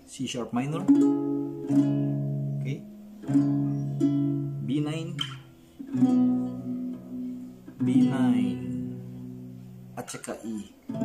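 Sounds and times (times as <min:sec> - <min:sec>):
acoustic guitar chords ringing: 0:00.5 - 0:11.0.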